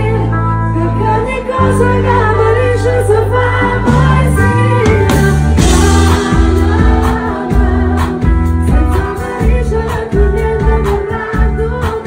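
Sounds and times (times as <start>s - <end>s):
amplified pop backing music: 0.0s - 12.0s
person singing into microphone: 0.0s - 12.0s.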